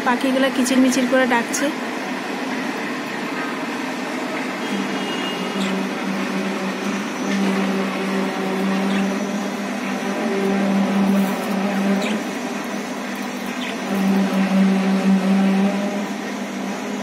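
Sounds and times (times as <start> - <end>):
low drone: 0.0 - 17.0
machine hum: 0.0 - 17.0
budgerigars chirping: 8.9 - 9.2.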